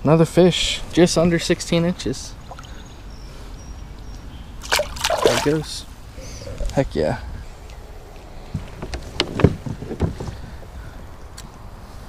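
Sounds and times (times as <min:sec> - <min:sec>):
water sloshing: 0:00.9 - 0:03.1, 0:04.6 - 0:05.9
fish splashing in water: 0:04.6 - 0:05.7.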